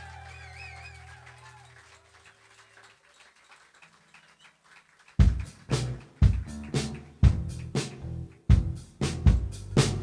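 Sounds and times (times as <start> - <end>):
rock band low notes ringing: 5.2 - 10.0.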